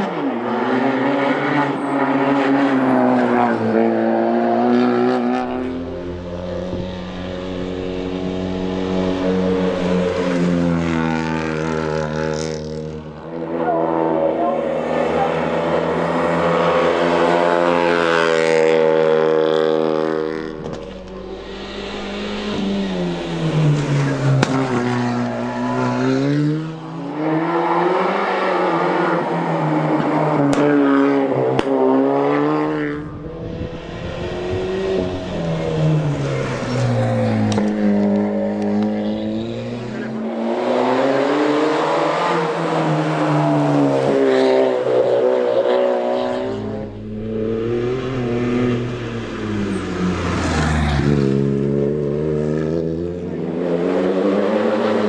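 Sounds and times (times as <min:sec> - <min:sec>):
rally car engines revving hard: 0:00.0 - 0:55.0.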